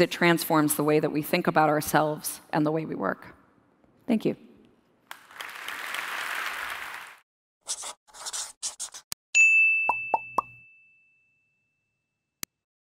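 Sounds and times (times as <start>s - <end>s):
applause: 5.0s - 7.2s
scratchy sounds: 7.7s - 9.1s
bright ringing ding: 9.4s - 12.0s.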